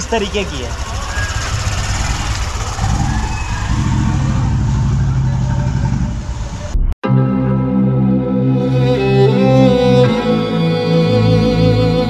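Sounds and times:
motorcycle engine running: 0.0s - 6.8s.

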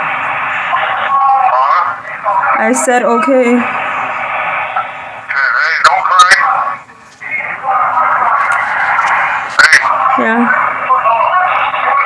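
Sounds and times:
indistinct voices over phone line: 0.4s - 12.0s.

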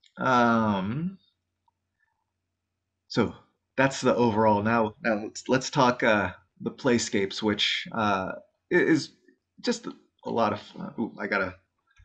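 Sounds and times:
man saying um: 0.2s - 1.1s, 3.1s - 9.1s, 9.7s - 11.5s
faint low hum: 3.1s - 9.1s.

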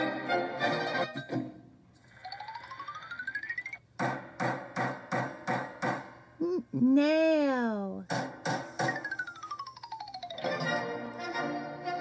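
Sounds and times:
hammer striking a nail: 4.0s - 6.1s
person speaking: 6.4s - 8.1s.

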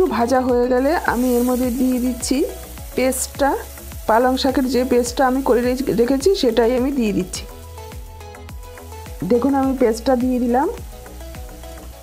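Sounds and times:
background music with singing: 0.0s - 12.0s
paste sizzling in hot oil: 0.0s - 12.0s.

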